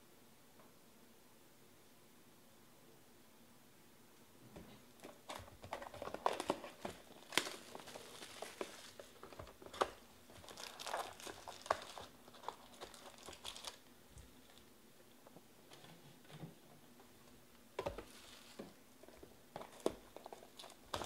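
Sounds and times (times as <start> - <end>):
plastic wrap crinkling: 5.0 - 14.7, 17.8 - 21.0.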